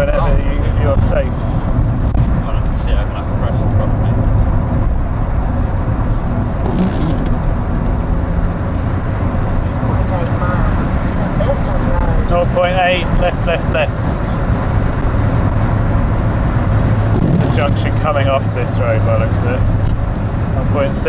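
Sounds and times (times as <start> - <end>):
car interior road noise: 0.0 - 21.0.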